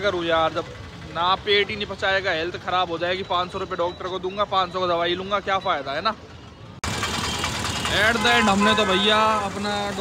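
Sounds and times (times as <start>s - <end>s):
street traffic noise: 0.0s - 10.0s
vehicle engines idling: 0.0s - 10.0s.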